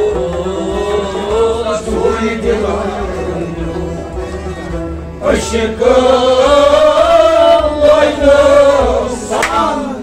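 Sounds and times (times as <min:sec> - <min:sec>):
harmonium: 0:00.0 - 0:10.0
men singing together: 0:00.0 - 0:10.0.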